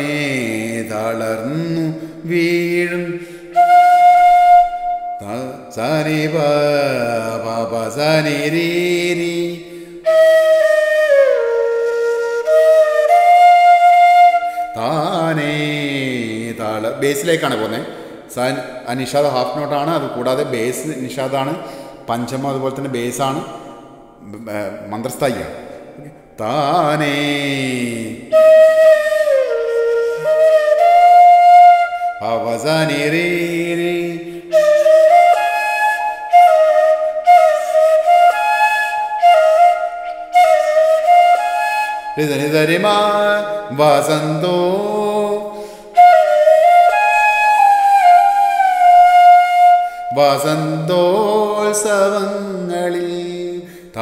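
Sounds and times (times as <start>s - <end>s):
man singing long held notes: 0.0s - 4.4s, 5.2s - 10.4s, 13.5s - 23.5s, 24.2s - 47.2s, 47.8s - 54.0s
bamboo flute playing: 2.9s - 5.7s, 10.0s - 15.7s, 28.2s - 33.1s, 34.3s - 43.8s, 45.6s - 51.2s.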